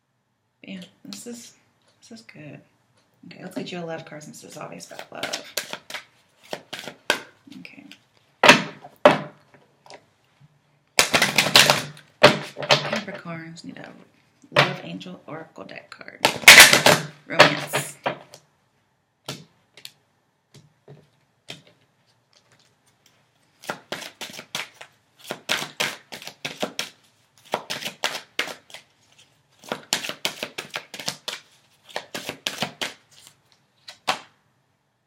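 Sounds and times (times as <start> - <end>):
cards being shuffled: 4.5 - 8.7, 21.4 - 34.3.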